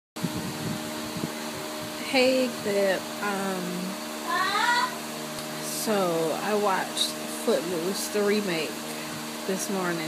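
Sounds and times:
machine hum with hiss: 0.2s - 10.0s.

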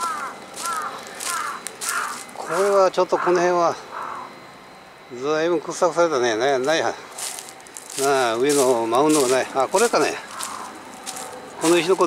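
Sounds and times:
crow cawing: 0.0s - 4.5s, 8.0s - 11.8s.

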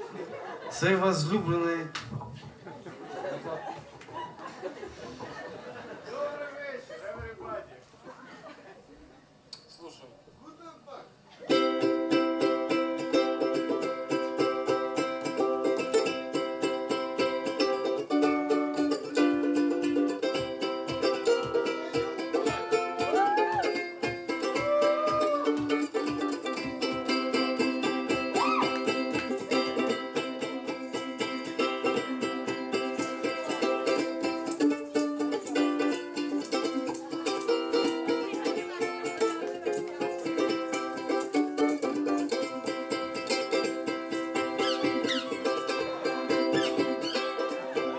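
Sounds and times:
ukulele strummed: 11.4s - 47.9s.

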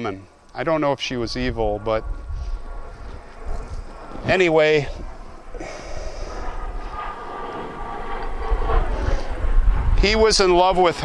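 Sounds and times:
airplane engine rumble with whine: 0.0s - 11.0s.

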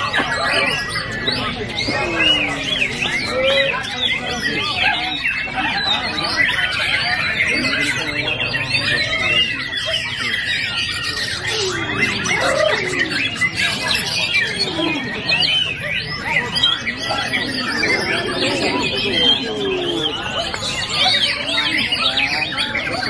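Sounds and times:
low background murmur: 0.0s - 23.0s
songbirds singing: 0.0s - 23.0s.

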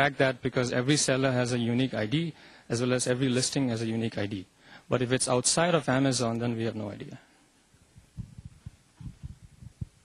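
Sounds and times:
soft muffled low thumps: 7.9s - 10.0s.

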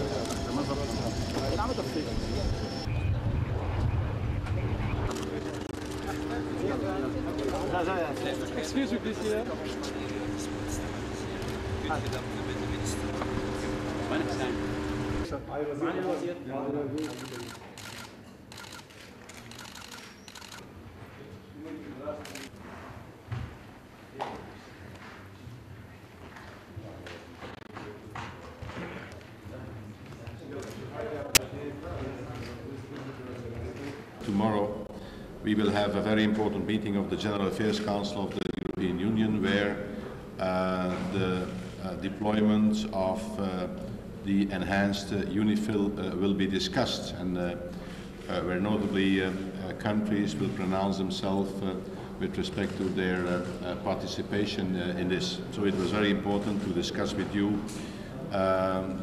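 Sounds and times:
low engine rumble: 0.0s - 15.3s
steady low hum: 0.0s - 15.3s
people talking: 0.0s - 17.6s, 30.5s - 47.6s, 48.3s - 57.7s, 58.3s - 59.0s
camera shutters clicking: 17.0s - 20.6s.

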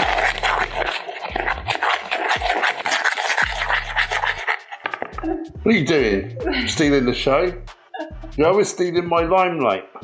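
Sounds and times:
metal spoon scraping plastic bowl: 0.0s - 5.6s.

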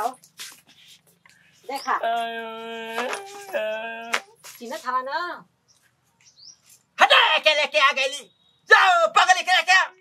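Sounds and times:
small bird chirp: 1.4s - 2.0s, 5.6s - 6.9s
person calling out: 2.0s - 4.4s.

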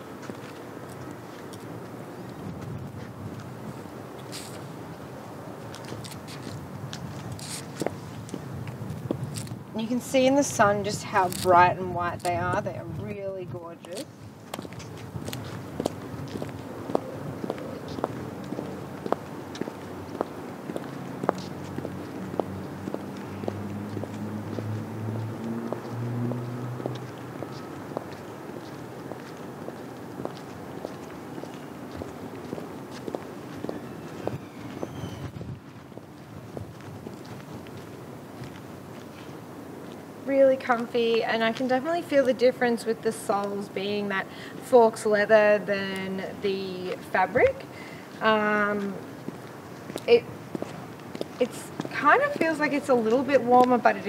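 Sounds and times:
outdoor background noise: 0.0s - 54.0s
high heels clicking on concrete: 13.8s - 40.0s, 47.2s - 54.0s.

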